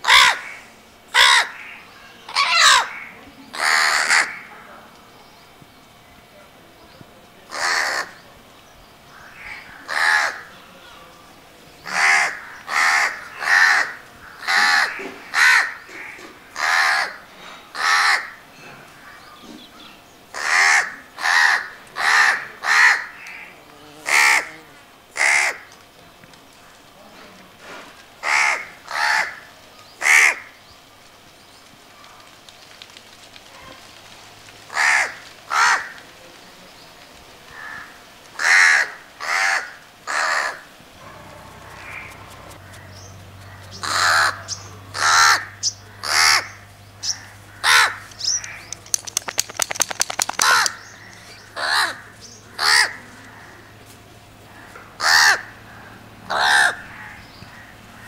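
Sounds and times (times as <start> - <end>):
crow cawing: 0.0 - 4.5, 7.5 - 8.2, 9.1 - 10.5, 11.9 - 18.4, 20.3 - 24.6, 25.2 - 25.7, 28.2 - 30.5, 34.7 - 36.0, 37.5 - 49.1, 50.1 - 53.8, 54.5 - 58.0.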